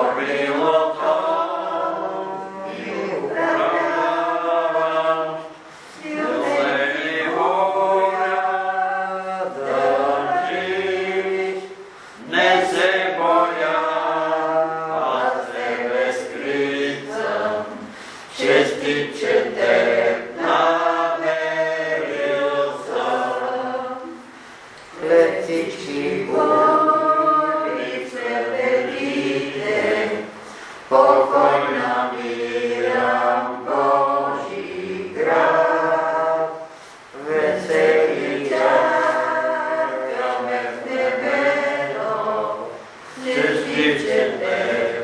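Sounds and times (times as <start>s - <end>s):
group singing a hymn a cappella: 0.0s - 45.0s.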